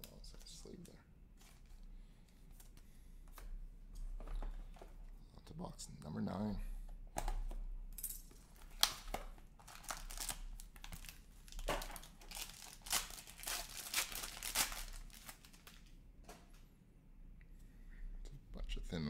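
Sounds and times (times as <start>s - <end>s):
foil wrapper crinkling and tearing: 8.5s - 15.9s.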